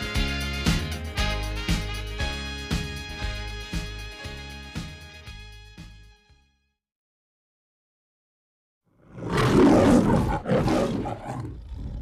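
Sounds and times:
lion growling: 9.0 - 12.0
lion roaring: 9.0 - 12.0.

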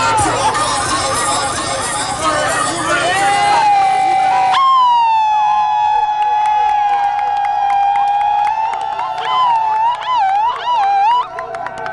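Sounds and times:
crowd high held vocal call: 0.0 - 11.9
handclaps: 6.0 - 11.9.

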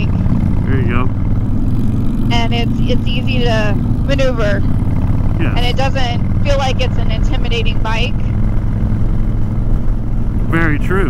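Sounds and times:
motorcycle engine droning: 0.0 - 11.0.

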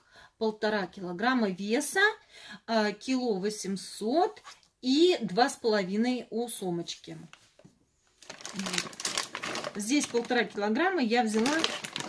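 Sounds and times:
plastic bag crinkling: 8.1 - 12.0.

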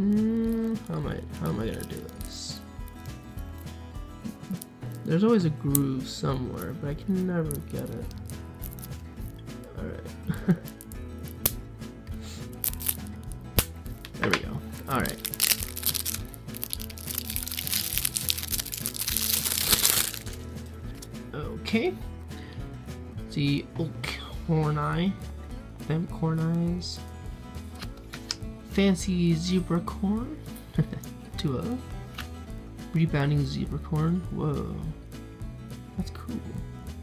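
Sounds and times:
quiet background music: 0.0 - 37.0
fingernails scratching plastic wrap: 15.1 - 20.4.

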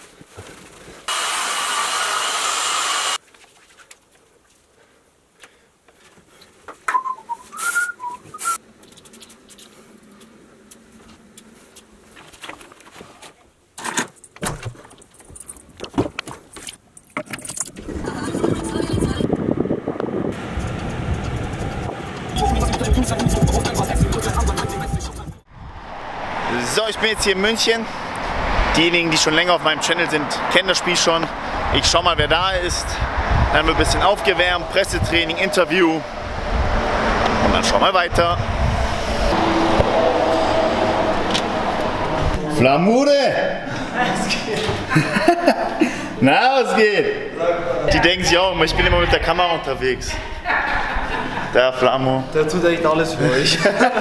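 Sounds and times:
handling clicks and rattles: 12.2 - 17.8
keys jangling: 14.2 - 15.8
vehicle rumble: 17.6 - 42.7.

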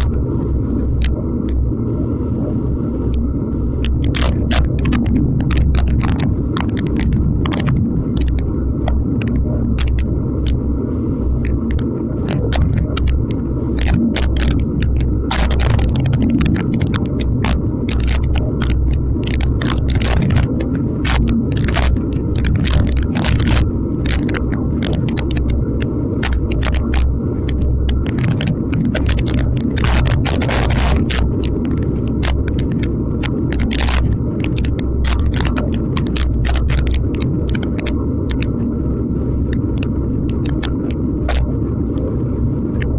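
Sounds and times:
sharp clicks and rattles: 0.0 - 0.2, 0.8 - 1.6, 3.1 - 10.7, 11.4 - 38.7, 39.4 - 42.9
sharp ticks: 0.0 - 0.2, 3.8 - 10.6, 11.4 - 38.6, 39.4 - 42.1
tyre and road noise: 0.0 - 1.7, 3.0 - 42.9
wind buffeting microphone: 0.0 - 42.9.

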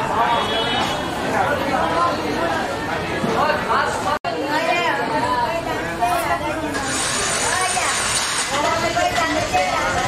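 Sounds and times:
overlapping chatter: 0.0 - 10.0.

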